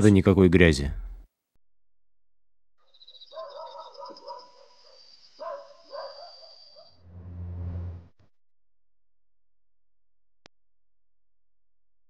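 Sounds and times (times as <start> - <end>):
night insects chirring: 2.8 - 7.0.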